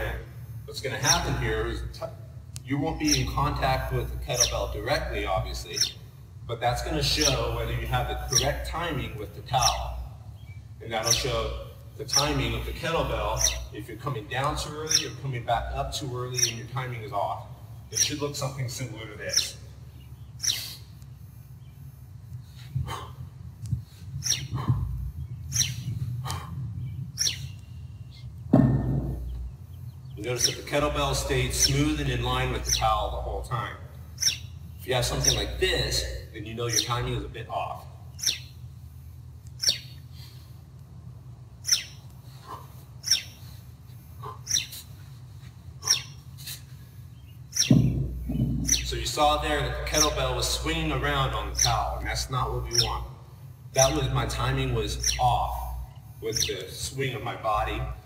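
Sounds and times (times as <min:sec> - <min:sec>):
small bird chirping: 0:00.0 - 0:40.5, 0:41.4 - 0:58.0
steady low hum: 0:00.0 - 0:58.0
man's sharp breaths: 0:22.4 - 0:25.2, 0:25.9 - 0:26.8, 0:40.1 - 0:40.7, 0:42.2 - 0:47.1
kettlebell thump on concrete: 0:28.5 - 0:29.4, 0:47.7 - 0:48.8.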